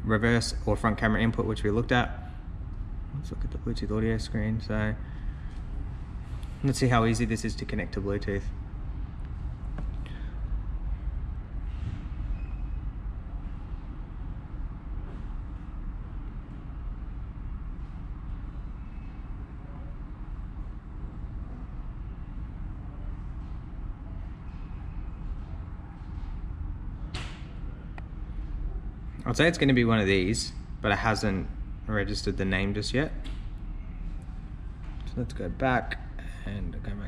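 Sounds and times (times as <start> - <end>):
low background rumble: 0.0 - 37.0.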